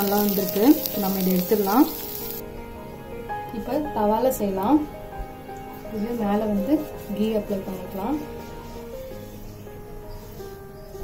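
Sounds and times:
sandwiches sizzling on grill: 0.0 - 2.4.

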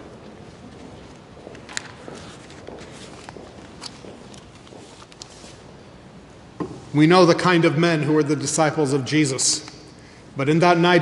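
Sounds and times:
paper pages rustling: 1.7 - 5.7.

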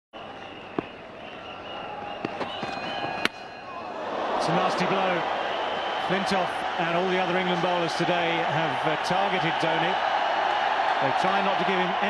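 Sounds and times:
wavering whistles: 0.2 - 3.9
stadium crowd noise: 0.2 - 12.0.

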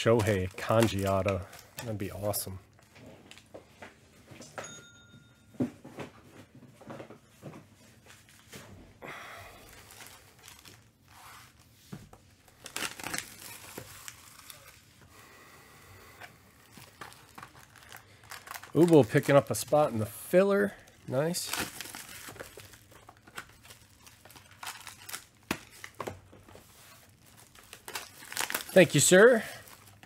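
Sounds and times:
foil packs crinkling: 0.0 - 3.4, 9.5 - 11.7, 12.3 - 15.4, 16.3 - 30.0.

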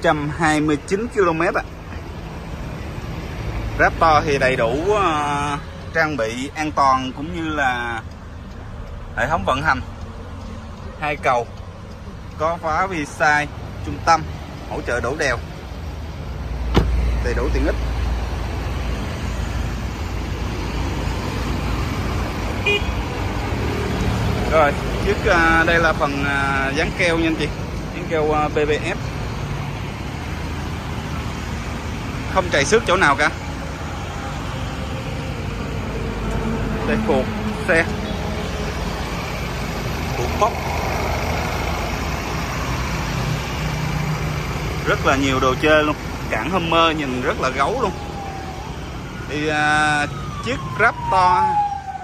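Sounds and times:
diesel engine idling: 0.0 - 50.4
road traffic rumble: 0.0 - 52.0
horn toot: 22.6 - 23.1.

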